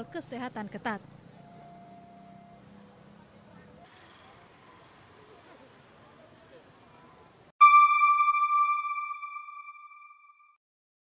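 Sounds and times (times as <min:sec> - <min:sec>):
bright electronic chime: 0:07.6 - 0:10.5.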